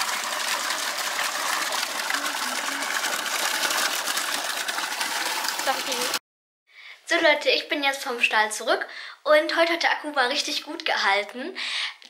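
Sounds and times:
hose water gushing into tub: 0.0 - 6.2.

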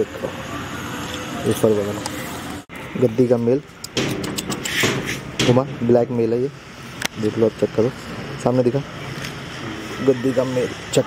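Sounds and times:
distant city traffic hum: 0.0 - 11.0
man speaking: 10.0 - 11.0.

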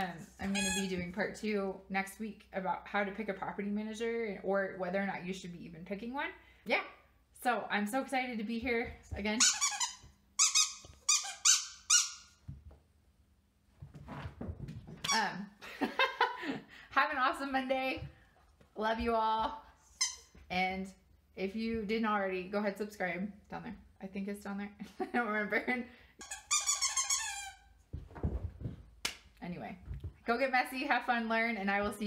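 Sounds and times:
squeaky dog toy squeaking: 0.4 - 1.1, 9.4 - 12.4, 19.9 - 20.4, 26.2 - 27.8.

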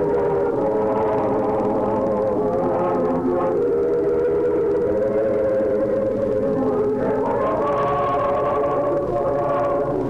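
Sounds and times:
choir singing a cappella chant: 0.0 - 10.0.

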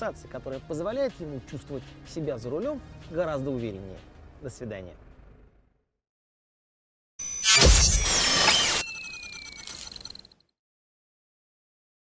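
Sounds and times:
high ringing tones: 7.2 - 10.4.

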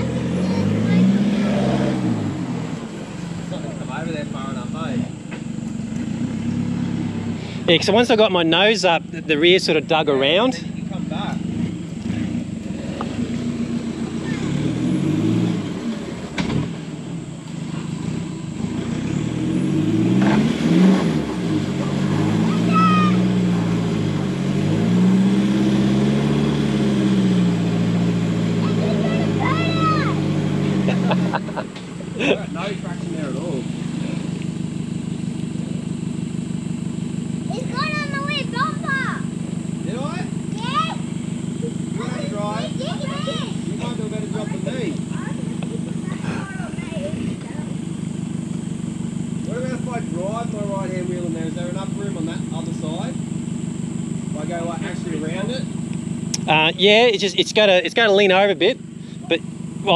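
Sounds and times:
engine idling: 0.0 - 59.9
truck engine revving: 0.0 - 59.9.

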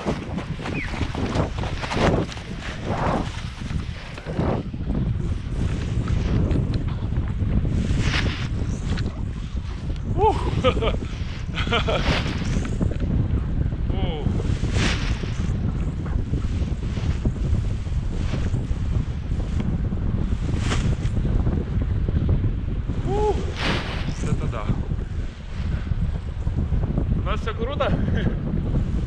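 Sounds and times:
wind noise on microphone: 0.0 - 29.0.

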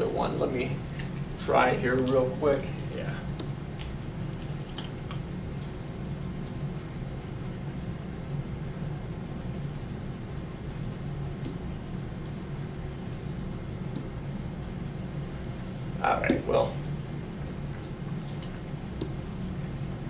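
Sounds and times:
low hum and room noise: 0.0 - 20.0.

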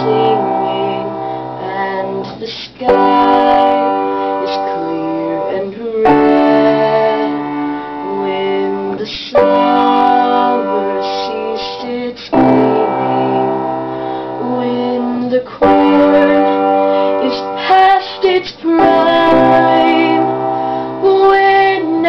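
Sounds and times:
piano playing sustained chords: 0.0 - 22.0.

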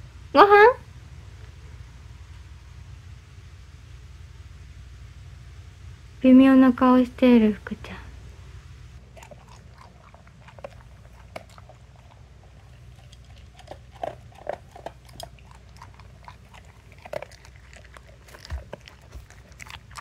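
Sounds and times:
puppy crunching dry kibble: 9.0 - 20.0.

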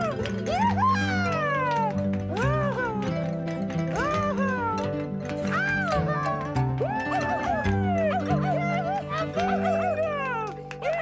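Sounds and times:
light background music: 0.0 - 11.0
person howling like a dog: 6.8 - 11.0.

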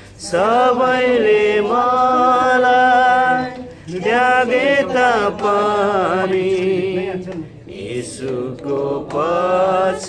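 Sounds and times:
person singing a hymn: 0.0 - 10.0.

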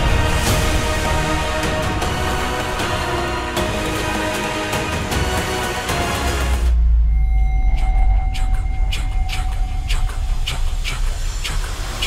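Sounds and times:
deep steady rumble: 6.7 - 12.0.

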